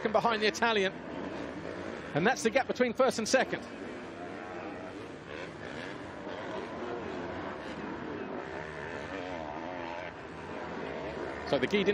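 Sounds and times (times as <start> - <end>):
motocross bike engines revving: 0.0 - 11.9.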